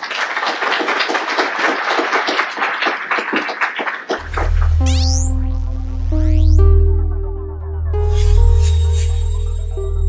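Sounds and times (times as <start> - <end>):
audience applauding: 0.0 - 4.5.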